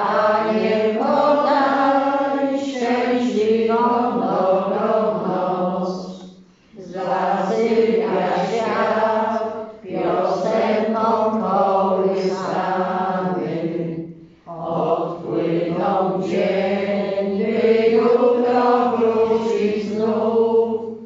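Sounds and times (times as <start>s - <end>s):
congregation singing a chant: 0.0s - 21.0s.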